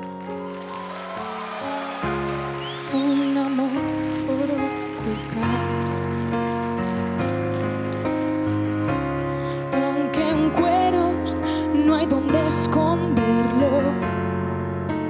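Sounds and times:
grand piano sustained chords: 0:00.0 - 0:15.0
woman singing a slow ballad: 0:02.7 - 0:06.0, 0:09.6 - 0:14.1.

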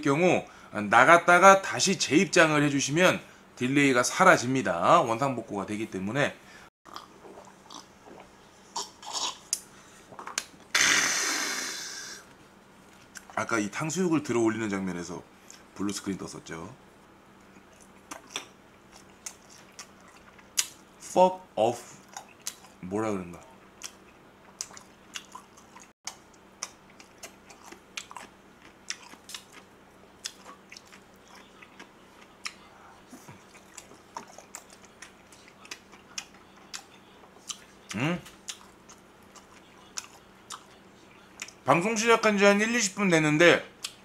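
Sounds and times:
person chewing food: 0:06.9 - 0:10.6, 0:17.4 - 0:20.8, 0:22.0 - 0:22.8, 0:23.7 - 0:41.6
man exhaling breathily: 0:10.8 - 0:12.3.

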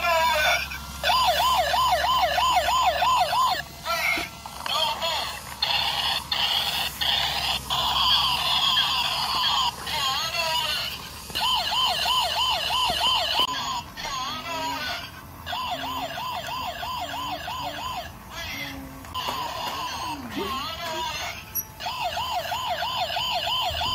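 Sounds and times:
toy electronic siren: 0:00.0 - 0:23.9.

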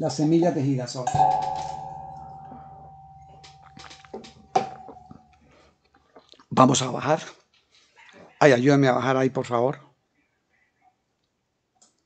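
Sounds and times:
bell-like chime ringing: 0:01.1 - 0:05.1.

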